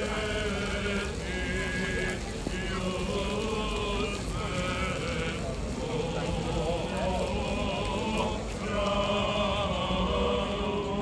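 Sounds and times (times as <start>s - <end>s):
voices singing a chant: 0.0s - 11.0s.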